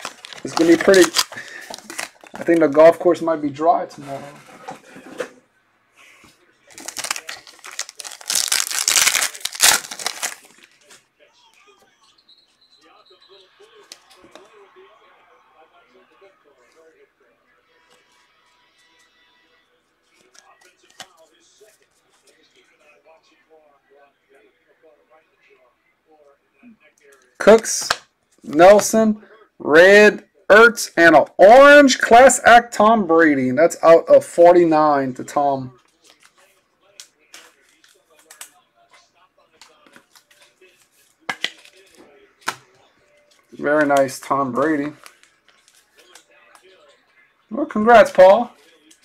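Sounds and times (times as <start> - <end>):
card pack rustling: 0.0 - 3.0, 6.7 - 11.0, 39.9 - 46.2.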